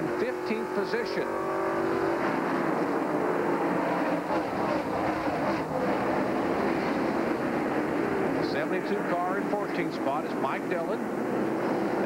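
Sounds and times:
race car engines passing: 0.0s - 12.0s.

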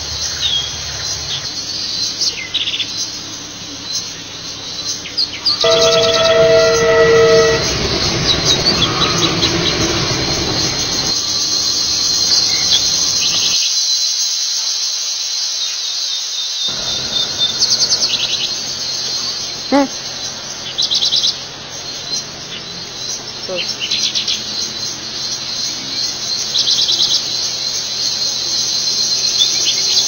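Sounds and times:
passing train rumbling: 0.0s - 13.6s, 16.7s - 30.0s
birds and insects chirping: 0.0s - 30.0s
train horn blast: 5.4s - 11.1s, 16.7s - 19.3s.

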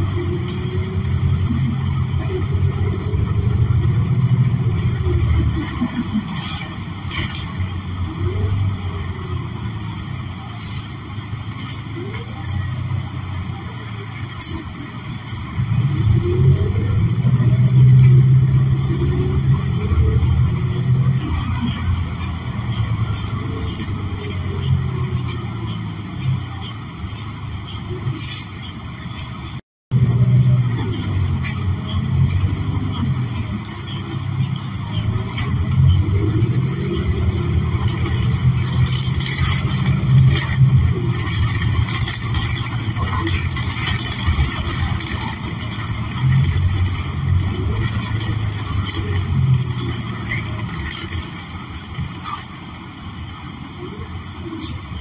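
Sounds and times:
bus engine running: 0.0s - 55.0s
road noise: 0.0s - 55.0s.

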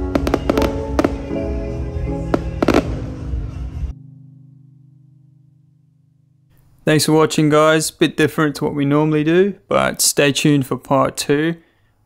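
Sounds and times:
fireworks sharp bangs: 0.0s - 1.6s, 2.3s - 3.4s
background music: 0.0s - 6.9s.

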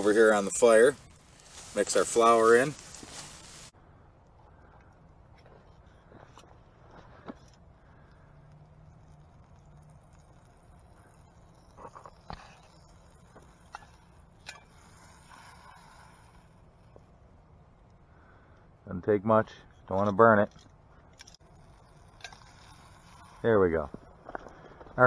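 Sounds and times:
fire pops and crackles: 0.0s - 18.8s, 19.6s - 25.0s
campfire burning: 0.0s - 25.0s.

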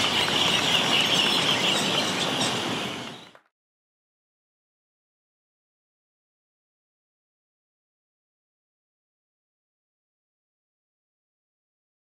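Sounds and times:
parakeets shrill calls: 0.0s - 3.4s.

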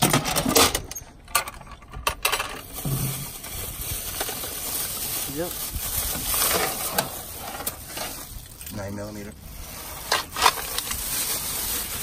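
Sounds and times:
plastic bag rustling: 2.6s - 12.0s.

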